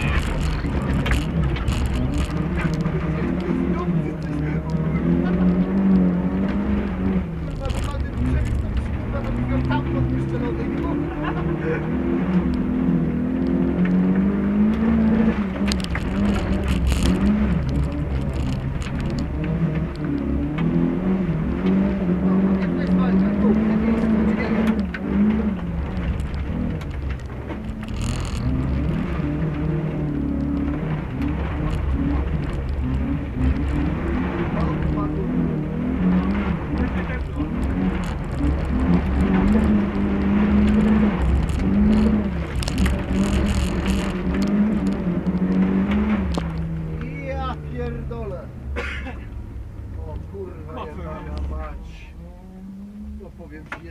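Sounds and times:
tyre and body rumble: 0:00.0 - 0:10.8
car engine revving: 0:00.0 - 0:53.9.

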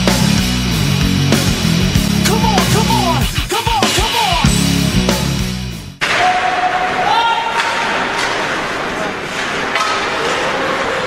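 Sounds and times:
skating and arena noise: 0:00.0 - 0:00.7, 0:06.0 - 0:11.0.

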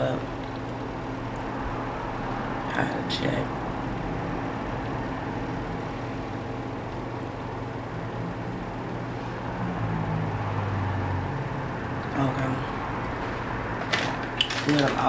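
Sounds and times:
low motor hum and rumble: 0:00.0 - 0:15.0.

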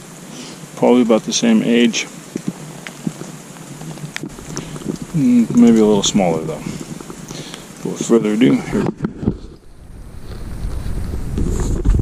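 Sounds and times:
rustling of clothing and gear: 0:00.2 - 0:12.0
small knocks and ticks: 0:02.3 - 0:09.6.

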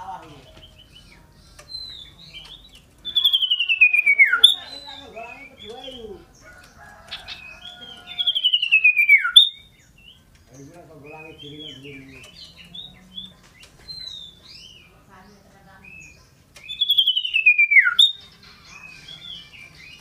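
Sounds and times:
bird singing rapid descending notes: 0:00.0 - 0:20.0.

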